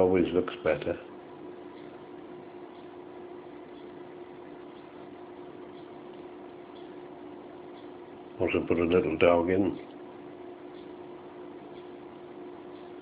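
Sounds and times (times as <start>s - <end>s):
faint hum: 0.0s - 13.0s.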